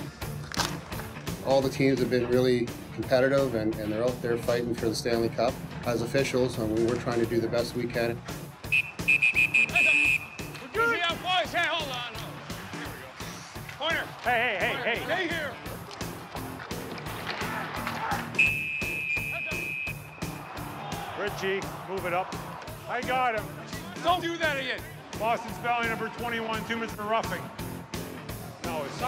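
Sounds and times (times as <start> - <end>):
background music with steady beat: 0.0 - 29.0
players shouting: 6.2 - 27.8
referee's whistle blasts: 8.6 - 11.0, 18.4 - 20.4.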